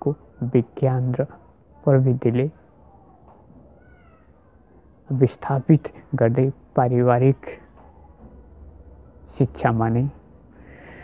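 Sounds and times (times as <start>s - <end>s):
faint high-pitched animal call: 2.9s - 4.9s.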